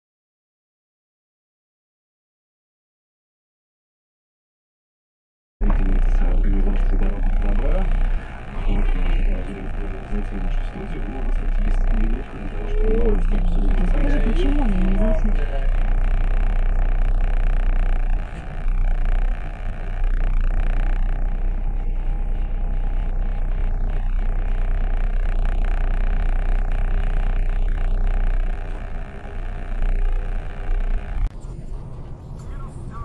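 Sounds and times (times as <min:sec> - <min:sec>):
low engine rumble: 0:05.6 - 0:33.0.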